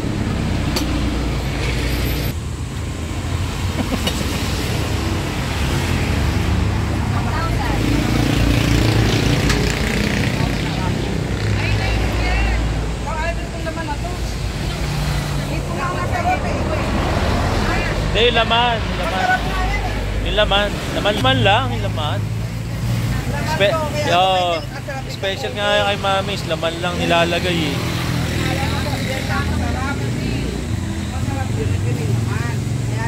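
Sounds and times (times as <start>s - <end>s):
road traffic passing: 0.0s - 33.0s.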